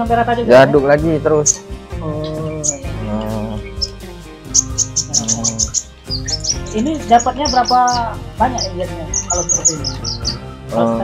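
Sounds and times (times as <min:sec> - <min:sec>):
songbird chirping: 0:00.0 - 0:11.0.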